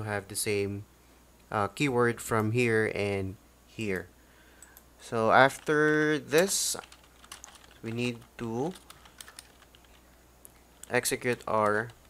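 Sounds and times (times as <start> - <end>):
keyboard keystrokes: 6.4 - 10.0, 10.8 - 12.0.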